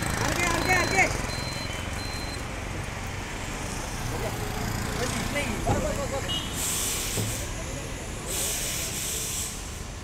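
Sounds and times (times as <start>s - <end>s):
high air hiss: 6.5s - 7.6s, 8.2s - 9.9s.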